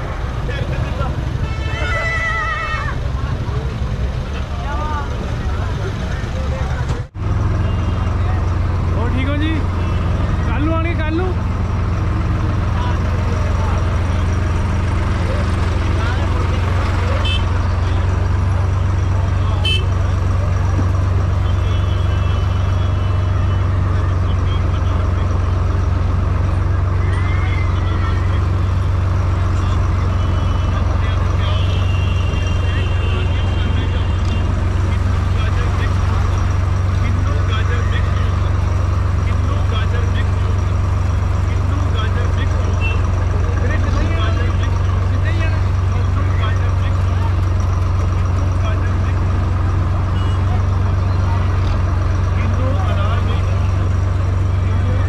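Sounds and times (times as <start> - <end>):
crowd voices hubbub: 0.0 - 55.0
vehicle engine drone: 0.0 - 55.0.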